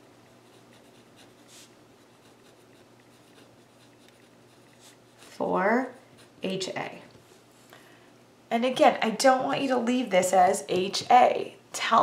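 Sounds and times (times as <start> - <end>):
pen scratching on paper: 0.4 - 6.6.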